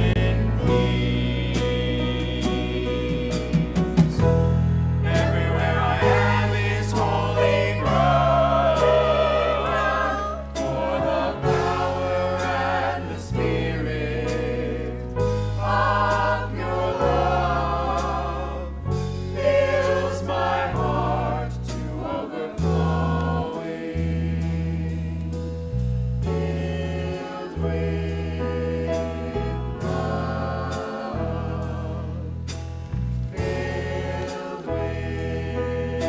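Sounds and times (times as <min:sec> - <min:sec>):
mixed choir singing: 0:00.0 - 0:04.4, 0:05.0 - 0:25.4, 0:26.2 - 0:32.6, 0:33.3 - 0:36.0
bass line: 0:00.0 - 0:36.0.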